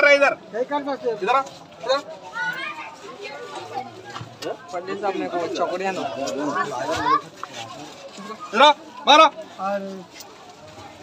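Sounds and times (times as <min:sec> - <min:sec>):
people talking over each other: 0:00.0 - 0:11.0
children's voices: 0:02.2 - 0:04.7, 0:06.3 - 0:08.5.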